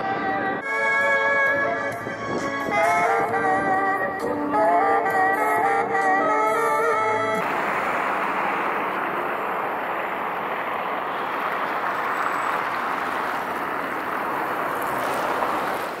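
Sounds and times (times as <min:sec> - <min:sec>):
city ambience rushing noise: 0:00.0 - 0:16.0.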